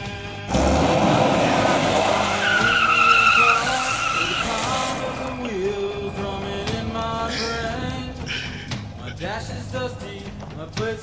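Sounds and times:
music track: 0.0s - 11.0s
car skidding on grass: 0.5s - 5.7s
tyre squeal: 1.4s - 5.6s.

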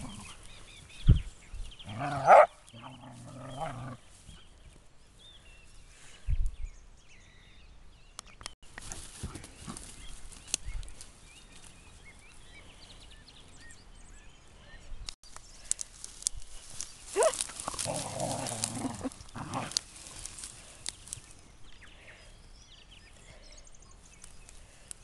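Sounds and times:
dog yelping and growling: 1.9s - 4.0s, 17.2s - 19.7s
dogs rustling through grass: 8.6s - 12.6s, 15.2s - 21.6s.

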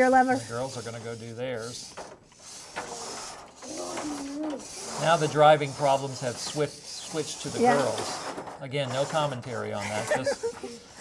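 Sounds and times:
robot motors whirring: 1.6s - 10.2s.

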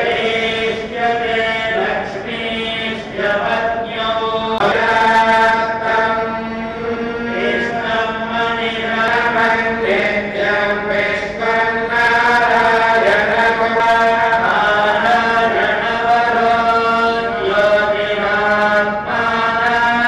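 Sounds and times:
men chanting melodically: 0.0s - 20.0s.

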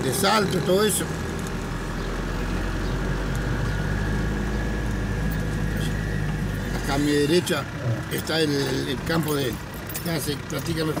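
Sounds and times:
road noise: 0.0s - 11.0s
truck engine droning: 0.0s - 11.0s.

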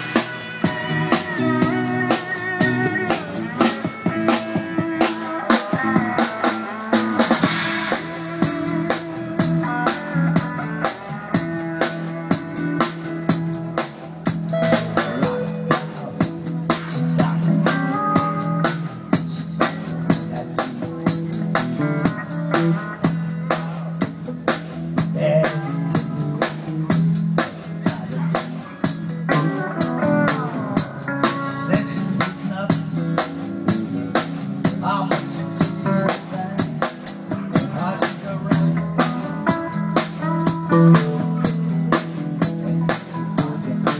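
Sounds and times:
steel drum melody: 0.0s - 19.1s
bass guitar: 0.0s - 43.9s
drum kit beat: 0.0s - 43.9s
guitar: 0.0s - 43.9s.

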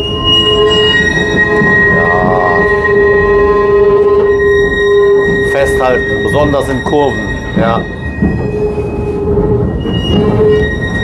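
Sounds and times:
tram running rumble: 0.0s - 11.0s
tram wheels squealing on rails: 0.0s - 11.0s.

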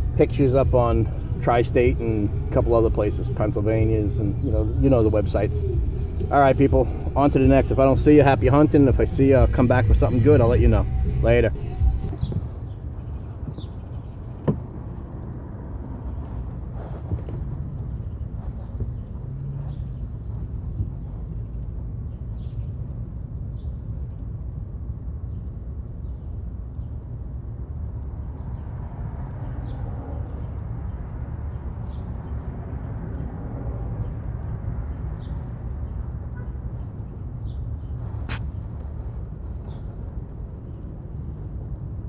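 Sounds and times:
low outdoor rumble: 0.0s - 42.0s.

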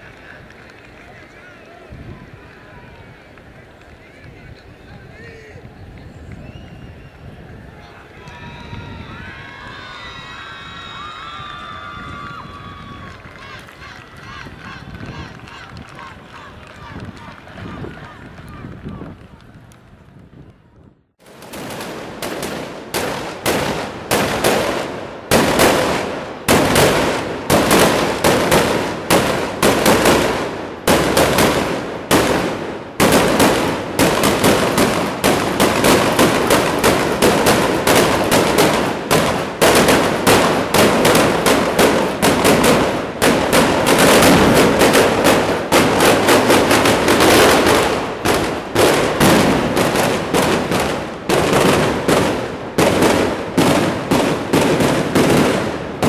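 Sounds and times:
firework mortar blasts: 21.2s - 56.0s.

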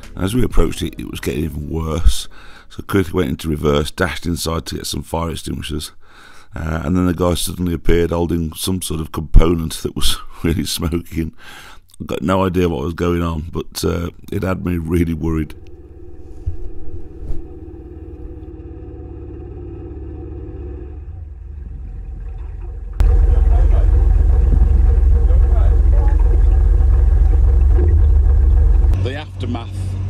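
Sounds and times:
loud deep rumble: 15.2s - 30.0s
boat engine running: 15.3s - 30.0s.

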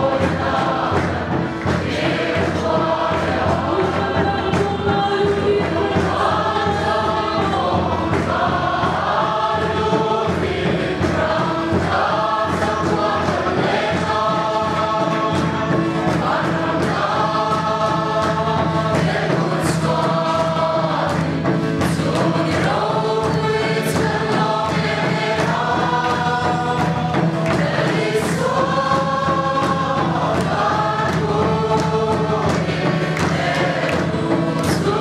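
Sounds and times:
congregation singing a hymn: 0.0s - 35.0s
faint regular beat: 0.0s - 35.0s.

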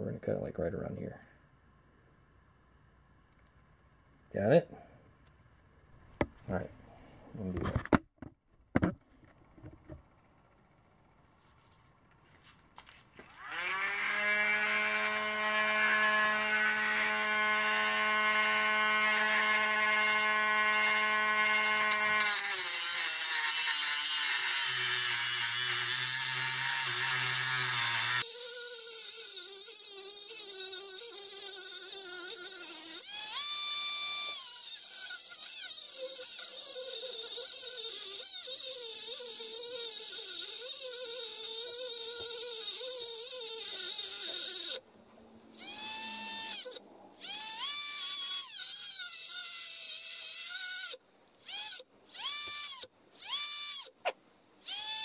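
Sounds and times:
rotary tool cutting metal: 13.3s - 44.8s, 45.6s - 55.0s.

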